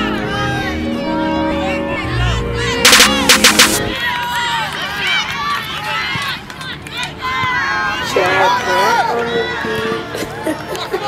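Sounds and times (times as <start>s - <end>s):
players and spectators shouting: 7.0s - 10.1s.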